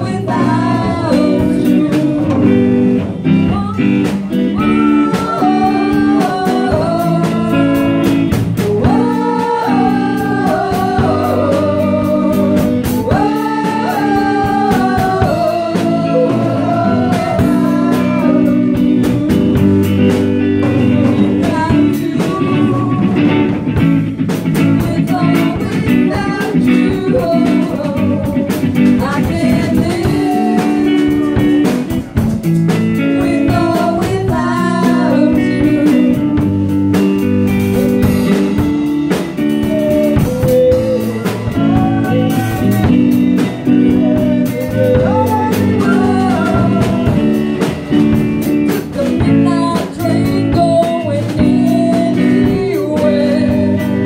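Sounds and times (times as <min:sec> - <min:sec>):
women singing together: 0:00.0 - 0:23.5, 0:24.8 - 0:31.8, 0:33.1 - 0:36.5, 0:39.6 - 0:47.9, 0:48.6 - 0:54.0
bass guitar: 0:00.0 - 0:54.0
drum kit: 0:00.0 - 0:54.0
electric guitar: 0:00.0 - 0:54.0.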